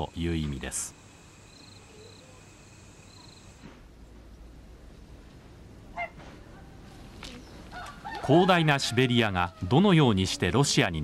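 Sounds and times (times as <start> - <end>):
faint outdoor ambience: 0.0 - 11.0.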